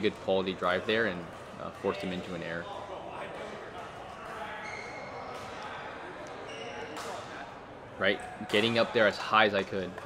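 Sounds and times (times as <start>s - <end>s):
large hall ambience: 0.0s - 10.0s
shoes squeaking on court: 4.2s - 5.6s, 6.2s - 7.3s.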